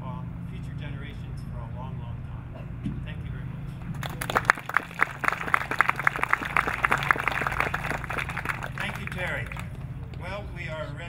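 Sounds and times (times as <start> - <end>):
small audience applauding: 3.9 - 10.2.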